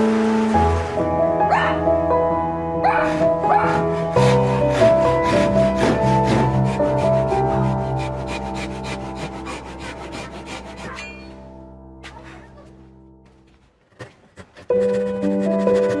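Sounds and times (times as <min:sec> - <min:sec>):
background music: 0:00.0 - 0:13.7, 0:14.6 - 0:16.0
hand saw cutting wood: 0:02.9 - 0:11.4, 0:13.9 - 0:16.0.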